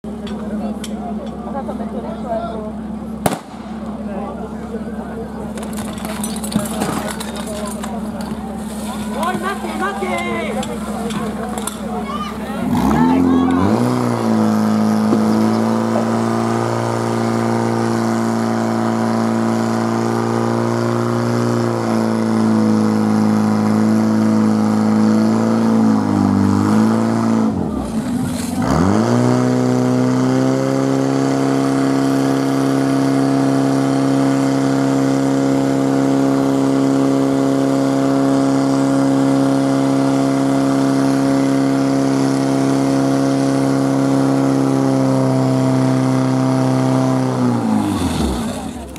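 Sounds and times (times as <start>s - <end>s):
fire pump engine at high revs: 0.0s - 48.9s.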